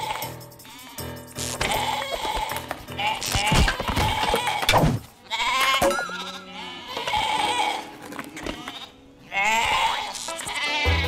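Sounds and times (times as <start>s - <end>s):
cartoon sheep bleating: 0.0s - 4.7s, 5.3s - 7.9s, 8.6s - 11.0s
background music: 0.0s - 11.0s.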